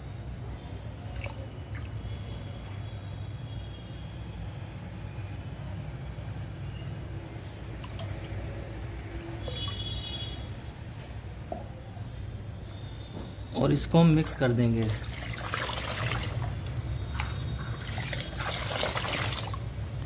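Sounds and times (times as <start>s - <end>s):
light drips: 7.8s - 10.2s
liquid pouring into bucket of water: 14.8s - 19.8s.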